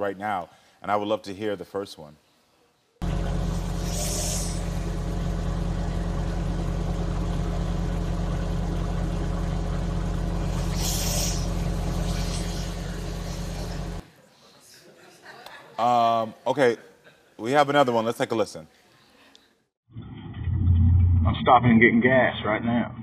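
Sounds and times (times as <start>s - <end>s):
low hum and rumble: 3.0s - 14.0s, 20.0s - 23.0s
hissy bursts: 3.5s - 5.0s, 10.4s - 14.0s.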